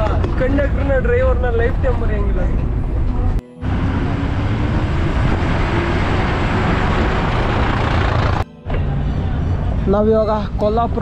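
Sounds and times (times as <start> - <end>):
bus engine and road noise: 0.0 - 11.0.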